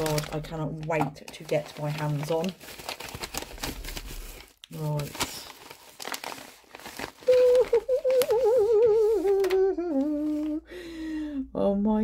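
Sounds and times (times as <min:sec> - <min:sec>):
tissue paper rustling: 0:00.0 - 0:10.6
woman humming excitedly: 0:07.3 - 0:10.7.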